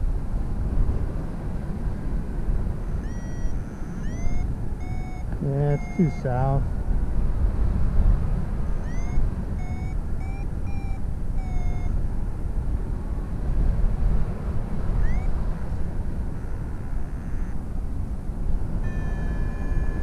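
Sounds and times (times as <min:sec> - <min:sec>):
wind rushing over microphone: 0:00.0 - 0:20.0
variometer chirps and beeps: 0:02.9 - 0:06.6, 0:08.8 - 0:12.0, 0:14.9 - 0:15.4, 0:16.4 - 0:17.6, 0:18.8 - 0:20.0.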